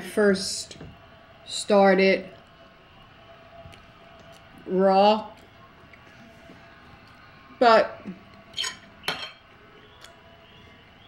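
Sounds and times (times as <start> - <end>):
fork clinking on plate: 8.6 - 9.4.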